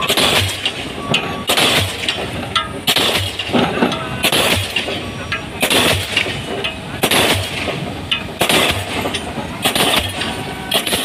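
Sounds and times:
pile hammer heavy blows: 0.0s - 11.0s.

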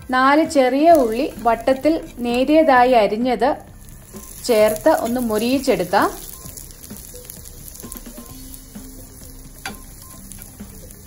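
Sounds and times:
shallots sizzling in oil: 0.1s - 11.0s
metal spatula stirring: 0.8s - 2.8s, 3.8s - 11.0s.

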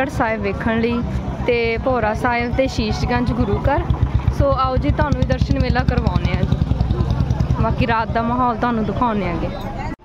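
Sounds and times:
motorcycle engine running: 0.0s - 9.6s
people's voices: 0.0s - 10.0s.

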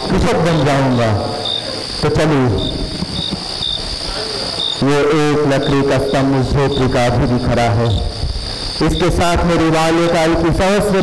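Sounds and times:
man's voice: 0.0s - 2.8s, 4.0s - 8.2s, 8.8s - 11.0s
crickets chirping: 0.0s - 11.0s.

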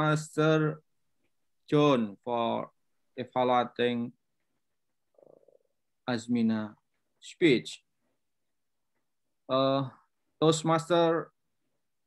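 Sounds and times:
man speaking: 0.0s - 0.9s, 1.6s - 4.2s, 6.0s - 7.9s, 9.4s - 11.4s
faint creaky vocal sound: 5.1s - 5.9s.

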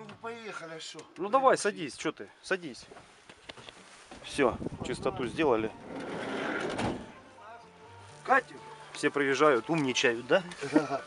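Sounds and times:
sliding door rolling shut: 5.8s - 7.2s.

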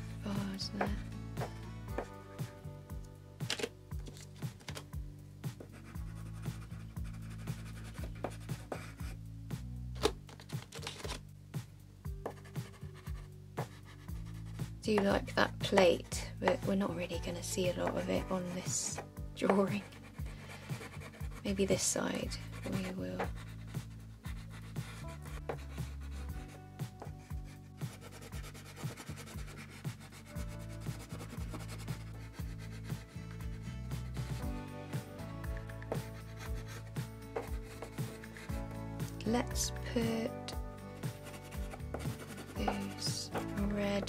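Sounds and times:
quiet background music: 0.0s - 44.0s
crayon scratching on paper: 5.6s - 9.2s, 12.2s - 34.4s, 35.5s - 40.3s, 41.0s - 44.0s.

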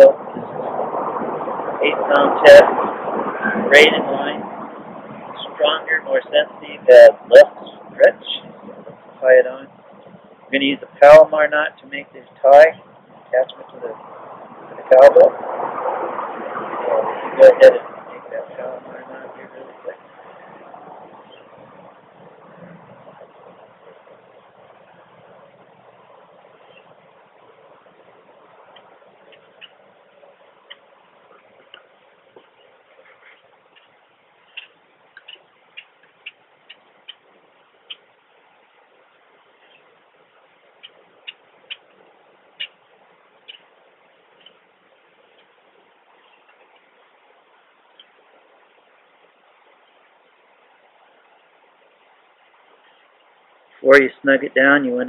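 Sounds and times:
faint hiss: 0.0s - 55.0s.

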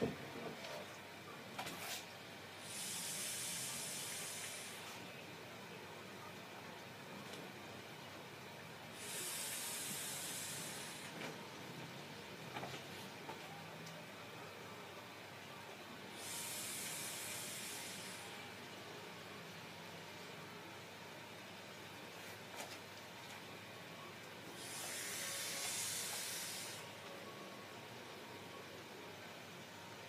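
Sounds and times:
hissing rushes of vapour: 2.6s - 5.0s, 9.0s - 11.2s, 16.2s - 18.4s, 24.6s - 26.9s.

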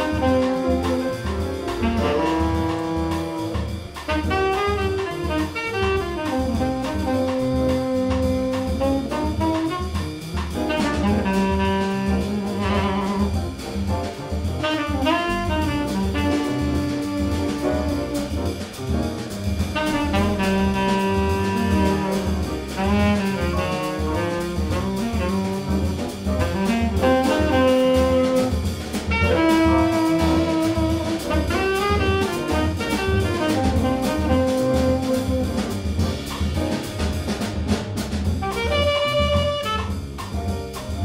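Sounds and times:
saxophone: 0.0s - 13.6s, 14.6s - 18.8s, 19.7s - 36.5s, 38.4s - 40.5s
drums: 0.0s - 41.0s
walking bass line: 0.0s - 41.0s.

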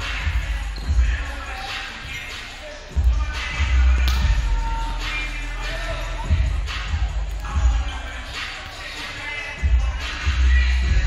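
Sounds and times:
voices chattering in echoing hall: 0.0s - 11.0s.

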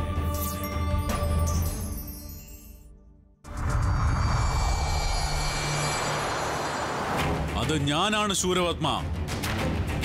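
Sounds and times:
low hum: 3.5s - 7.5s.

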